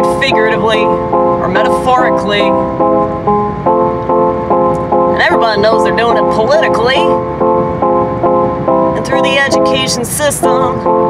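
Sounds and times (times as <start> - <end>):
rhythmic sustained chords: 0.0 - 11.0.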